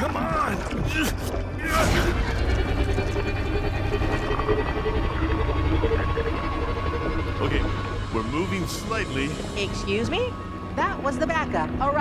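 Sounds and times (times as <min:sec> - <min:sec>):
dramatic music score: 0:00.0 - 0:12.0.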